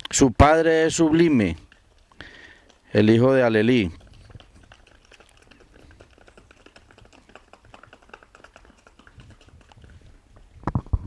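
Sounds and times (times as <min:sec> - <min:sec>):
horse hoofbeats on stone paving: 0:02.9 - 0:10.5.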